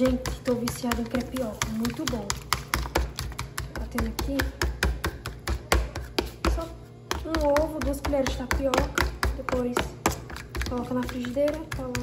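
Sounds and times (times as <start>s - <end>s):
fork beating eggs in plastic container: 0.0s - 12.0s.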